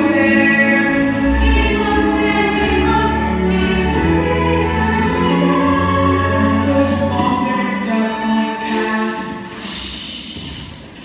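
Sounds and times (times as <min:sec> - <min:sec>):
instrumental accompaniment: 0:00.0 - 0:09.6
young voices singing together: 0:00.0 - 0:11.0.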